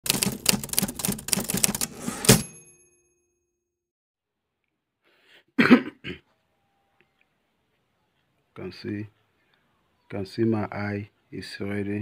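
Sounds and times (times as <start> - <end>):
typewriter keys clacking: 0.0 - 2.4.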